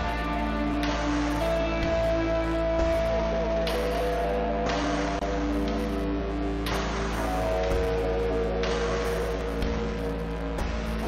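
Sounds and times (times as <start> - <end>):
ambient electric guitar tones: 0.0 - 11.0
steady low hum: 0.0 - 11.0.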